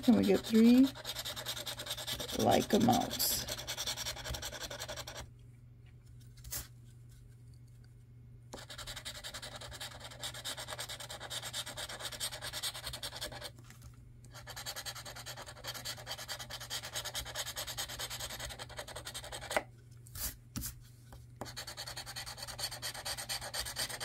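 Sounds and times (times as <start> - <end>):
scratching lottery ticket: 0.0 - 5.3, 8.6 - 13.6, 14.3 - 19.5, 21.4 - 24.0.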